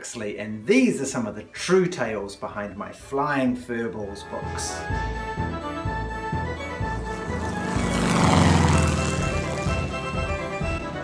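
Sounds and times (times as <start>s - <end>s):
theme music: 4.7s - 11.0s
propeller plane flying by: 6.2s - 10.8s.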